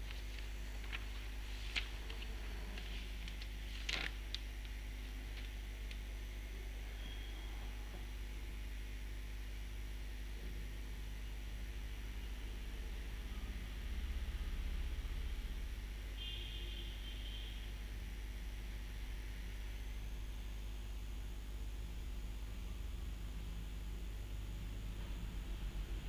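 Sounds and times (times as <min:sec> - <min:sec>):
low electrical hum: 0:00.0 - 0:26.0.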